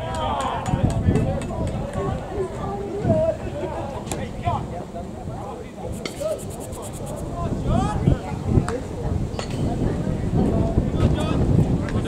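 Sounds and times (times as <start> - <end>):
faint voices: 1.4 - 11.0
brush sweeping plate: 5.9 - 7.2.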